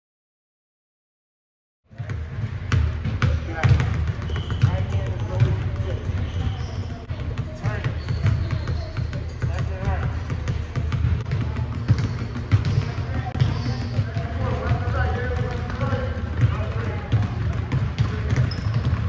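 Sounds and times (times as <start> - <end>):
basketballs bouncing on wooden floor: 1.9 - 19.0.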